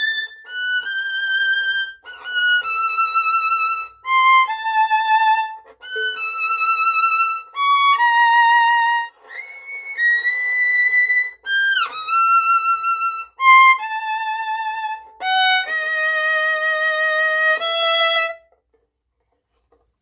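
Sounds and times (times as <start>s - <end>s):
solo violin with vibrato: 0.0s - 18.6s.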